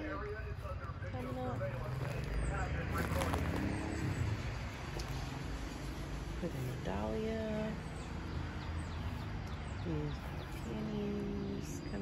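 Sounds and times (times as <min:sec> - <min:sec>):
faint voices: 0:00.0 - 0:05.4
car passing: 0:00.1 - 0:12.0.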